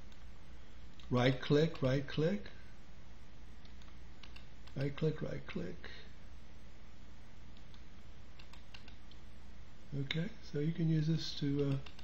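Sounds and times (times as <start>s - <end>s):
low steady hum: 0.0s - 12.0s
computer input clicks: 3.6s - 4.8s, 8.4s - 9.2s, 11.5s - 12.0s.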